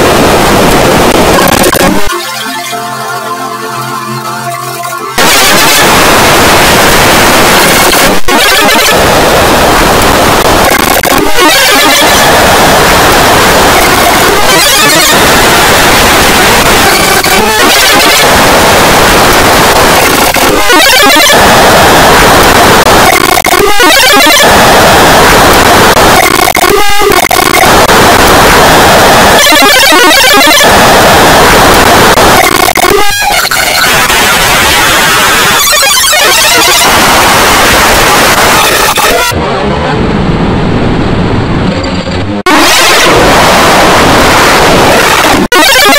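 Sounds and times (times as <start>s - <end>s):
garbled warbling texture: 0.0s - 45.9s
harsh distorted static noise: 0.0s - 45.9s.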